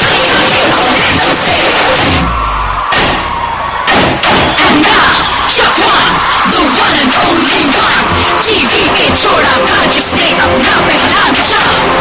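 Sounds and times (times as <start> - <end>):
loud dance music: 0.0 - 12.0
heavy drum hits: 1.8 - 4.7.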